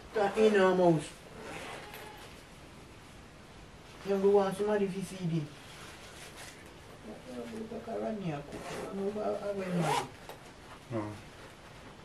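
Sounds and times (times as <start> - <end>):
bag rubbing: 1.3 - 2.4, 8.5 - 10.2
zipper on fabric bag: 1.4 - 2.2, 8.5 - 9.1, 9.7 - 10.2.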